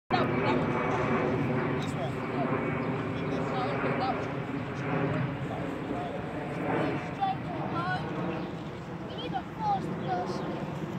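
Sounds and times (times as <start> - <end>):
boys calling and chattering: 0.1 - 10.9.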